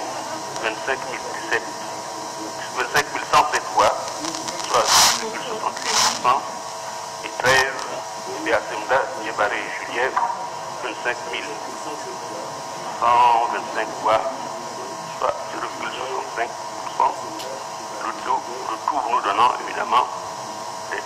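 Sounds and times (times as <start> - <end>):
steady hum and hiss: 0.0 - 21.0.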